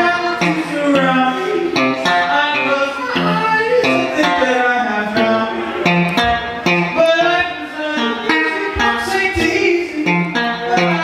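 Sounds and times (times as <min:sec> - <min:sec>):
guitar chords strummed: 0:00.0 - 0:11.0
man singing into a microphone: 0:00.0 - 0:11.0.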